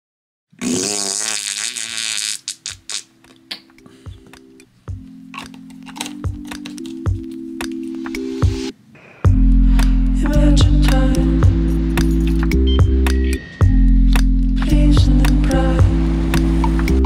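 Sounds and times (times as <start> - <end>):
gel squirting from plastic bottle: 0.6 - 3.1.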